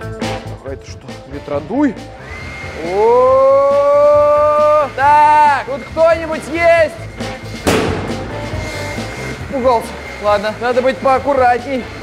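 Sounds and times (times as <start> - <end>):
background music: 0.0 - 12.0
balloon bursting: 7.6 - 9.2.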